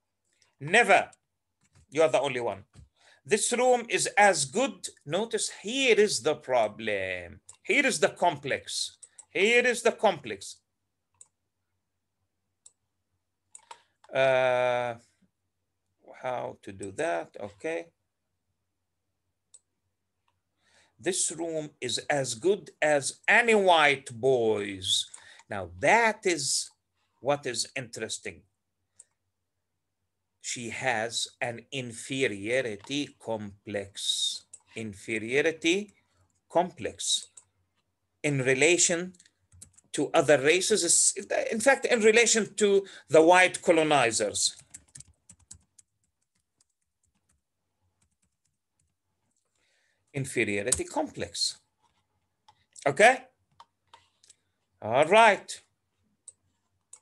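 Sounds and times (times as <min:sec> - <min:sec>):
faint keyboard typing: 0:00.2 - 0:03.0, 0:08.4 - 0:09.4, 0:11.1 - 0:11.4, 0:13.4 - 0:14.2, 0:24.9 - 0:25.5, 0:32.5 - 0:33.2, 0:34.0 - 0:38.0, 0:38.7 - 0:40.0, 0:44.2 - 0:54.8, 0:55.6 - 0:57.0.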